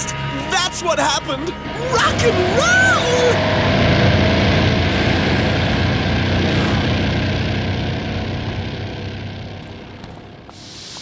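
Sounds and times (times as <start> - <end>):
futuristic motorbike engine: 1.5 - 11.0.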